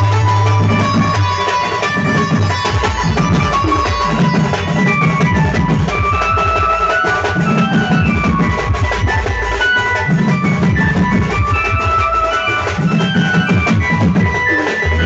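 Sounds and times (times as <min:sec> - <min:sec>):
loud fast drumming: 0:00.0 - 0:15.0.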